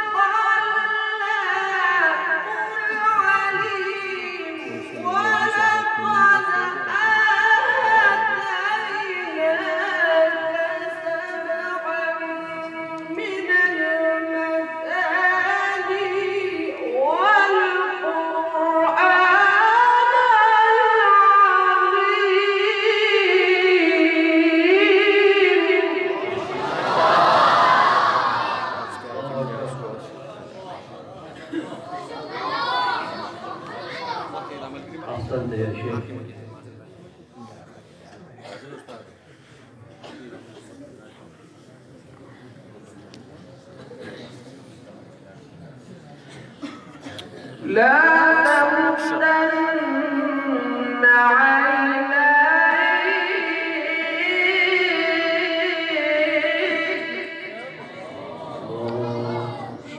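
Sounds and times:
man reciting melodically: 0.2 - 26.3, 47.6 - 51.4
crowd murmur: 26.0 - 49.2, 56.6 - 59.9.

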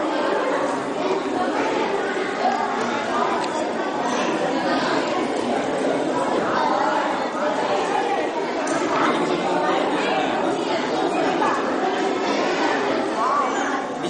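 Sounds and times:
background chatter: 0.0 - 14.0.

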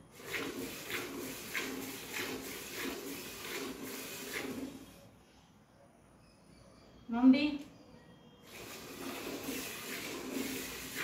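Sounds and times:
milk squirting into steel bucket: 0.1 - 5.0, 8.5 - 11.0.

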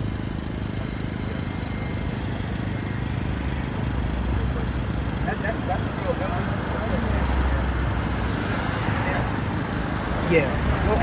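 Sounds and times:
passing vehicle rumble: 0.0 - 11.0.

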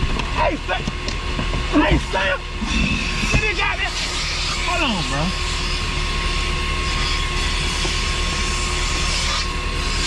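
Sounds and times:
car vacuum running: 0.0 - 6.9
motor whine: 0.0 - 10.0.

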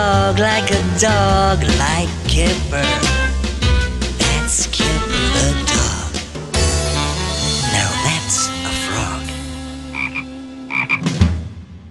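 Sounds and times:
held music chord: 2.7 - 10.8
cartoon toad croaking: 8.6 - 11.0.

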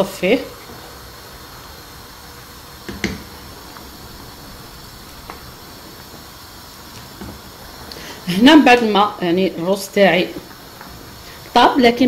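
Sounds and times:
rice boiling in water: 0.0 - 12.0.

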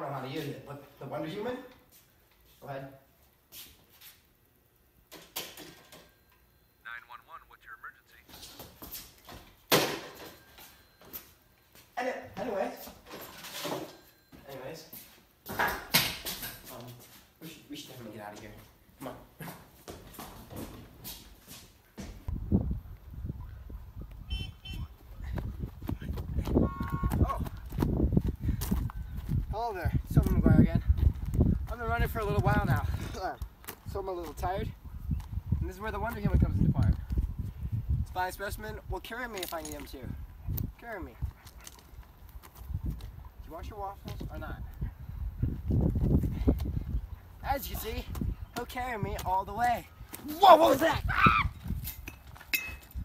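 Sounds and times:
running footsteps on dirt path: 24.8 - 34.4, 40.6 - 47.0.

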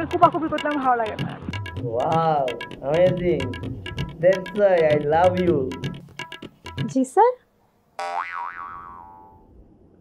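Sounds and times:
cartoon boing sound effect: 8.0 - 9.4.

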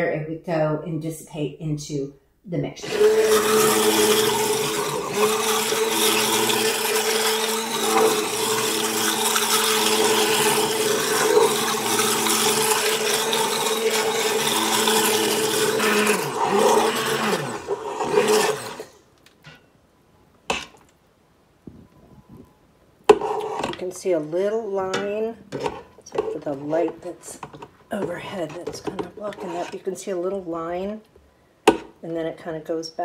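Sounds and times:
stick blender running: 2.8 - 19.0, 24.9 - 29.8.

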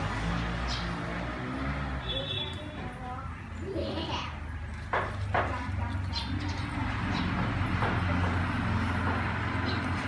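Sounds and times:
faint distant voices: 0.7 - 10.0.

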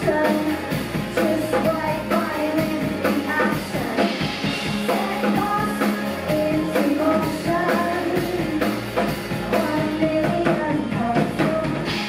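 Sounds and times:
drum kit beat: 0.0 - 12.0
rock band playing: 0.0 - 12.0
woman singing lead: 0.0 - 12.0.

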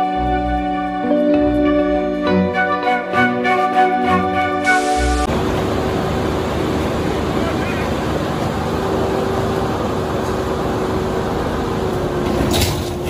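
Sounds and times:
heavy vehicle engine under load: 5.2 - 13.0
onlookers' voices: 6.9 - 10.3.

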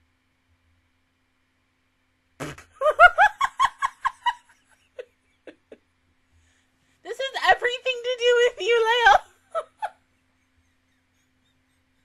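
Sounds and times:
woman laughing: 2.8 - 5.8, 7.1 - 10.0.

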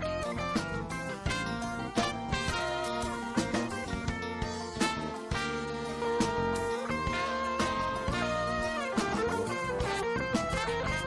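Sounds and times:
jazz fusion band playing: 0.0 - 11.0
long held melody notes: 0.0 - 11.0.

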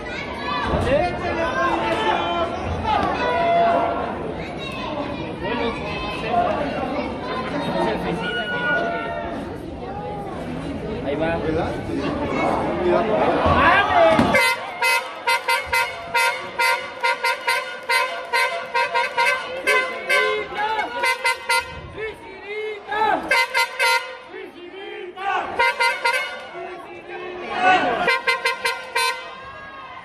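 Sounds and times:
crowd noise: 0.0 - 30.0
people shouting: 13.4 - 30.0
horn tooting: 14.2 - 22.2, 23.2 - 24.4, 25.5 - 26.6, 27.9 - 29.6.

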